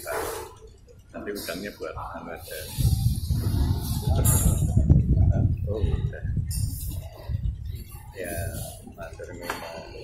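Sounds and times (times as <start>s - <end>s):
low rumble on microphone: 1.9s - 10.0s.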